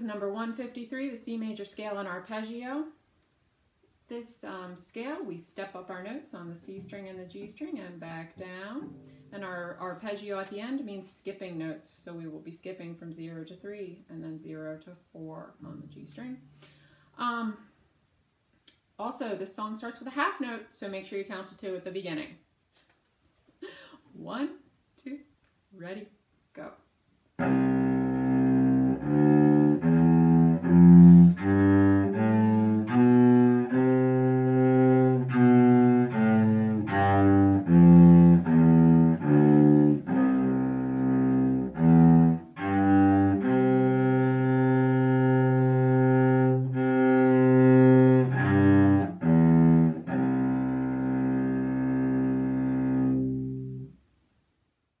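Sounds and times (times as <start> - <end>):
cello bowing long note: 8.7 - 9.8, 27.4 - 53.9.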